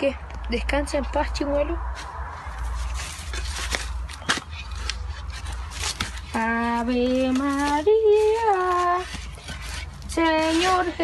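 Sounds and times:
metal shovel scraping soil: 2.0s - 11.0s.

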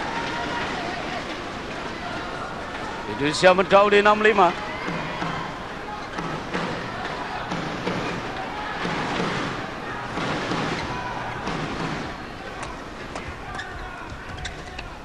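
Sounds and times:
arena crowd cheering rhythmically: 0.0s - 15.0s.

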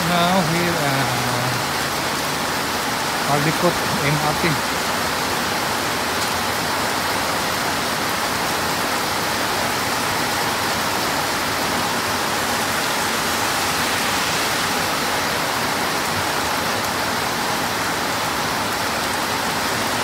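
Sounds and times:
heavy rain falling: 0.0s - 20.0s.

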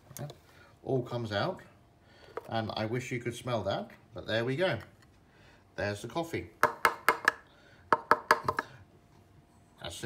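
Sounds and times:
plastic container clicks and taps: 6.6s - 8.7s.

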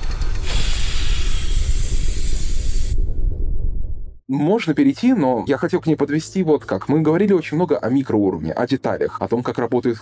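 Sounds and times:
deep rumble: 0.0s - 4.2s
loud steady hiss: 0.4s - 3.0s.

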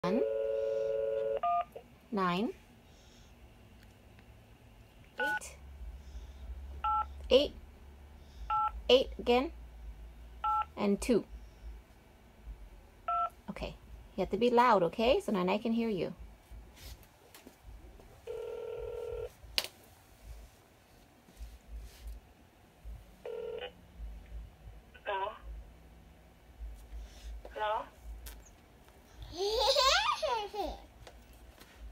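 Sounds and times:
phone dial tone: 0.0s - 1.8s, 18.3s - 19.3s, 23.3s - 23.8s.

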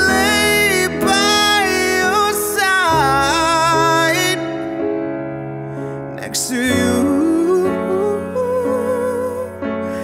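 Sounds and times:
man singing: 0.0s - 5.1s, 5.9s - 10.0s
grand piano chords: 0.0s - 10.0s.

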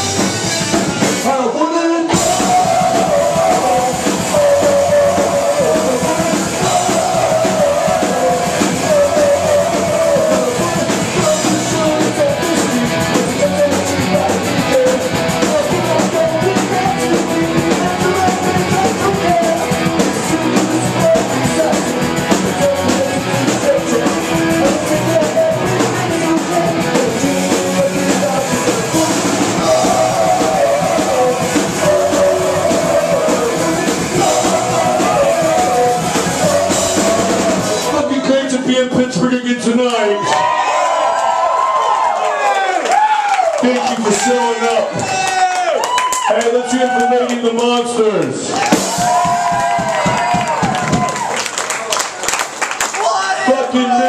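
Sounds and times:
punk rock band playing live: 0.0s - 39.0s, 48.6s - 51.2s.

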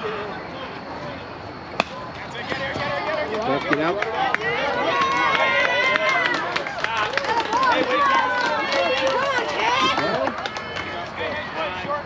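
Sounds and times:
spectators' voices: 0.0s - 12.0s
bat hitting ball crack: 1.8s - 2.6s.

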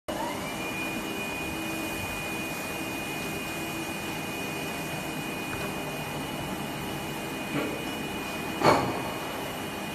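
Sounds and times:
machine whirring with motor whine: 0.1s - 9.9s.

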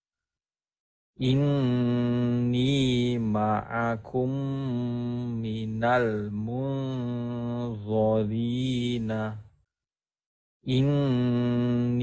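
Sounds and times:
person chanting recitation: 1.2s - 9.4s, 10.7s - 12.0s.

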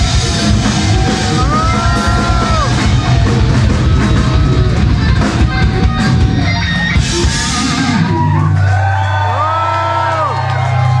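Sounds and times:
punk band playing: 0.0s - 9.4s.

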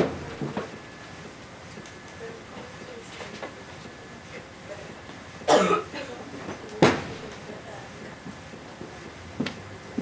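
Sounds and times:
person coughing: 5.5s - 6.2s.

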